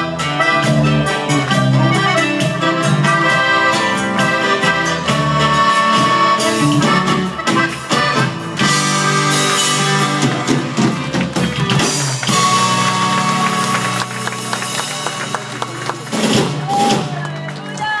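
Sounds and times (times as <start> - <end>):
live band with guitars bass and drums: 0.0 - 18.0.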